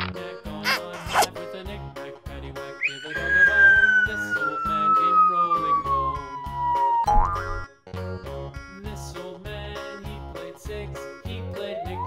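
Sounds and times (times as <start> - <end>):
upbeat children's music: 0.0 - 12.0
whistle tone sliding downward: 2.8 - 7.2.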